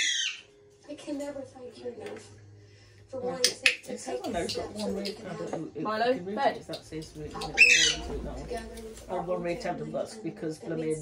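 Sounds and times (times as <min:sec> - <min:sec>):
macaw squawk: 0:00.0 - 0:00.5, 0:07.4 - 0:08.2.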